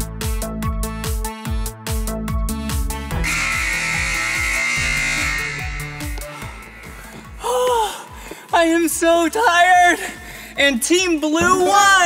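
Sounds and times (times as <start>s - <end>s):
upbeat electronic dance music: 3.1s - 7.4s.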